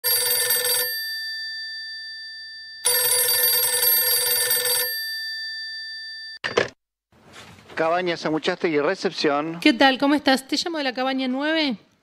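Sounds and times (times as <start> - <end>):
telephone ringing: 0.0 - 6.8.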